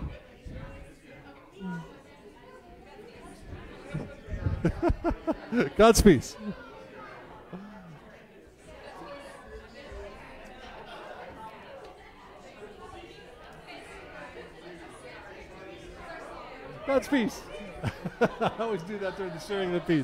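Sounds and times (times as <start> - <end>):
faint chatter of a crowd: 0.0 - 20.0.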